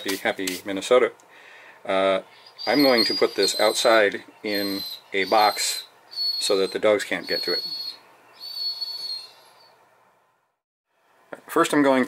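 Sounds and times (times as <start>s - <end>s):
light hiss: 0.0s - 4.8s
high-pitched whine: 2.6s - 8.0s.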